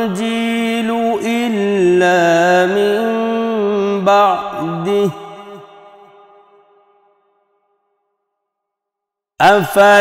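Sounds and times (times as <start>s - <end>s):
man reciting melodically: 0.0s - 6.2s, 9.4s - 10.0s.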